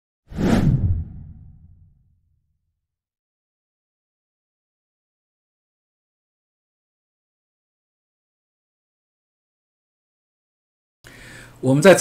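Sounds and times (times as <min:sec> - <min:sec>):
whoosh sound effect: 0:00.3 - 0:02.0.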